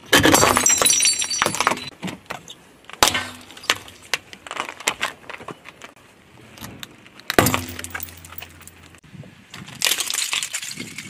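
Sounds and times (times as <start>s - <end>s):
objects crunching under car tyre: 0.0s - 11.0s.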